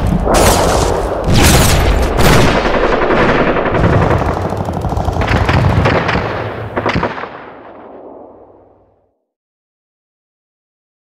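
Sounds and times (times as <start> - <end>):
single gunshots: 0.0 - 4.3
rapid automatic gunfire: 0.3 - 8.0.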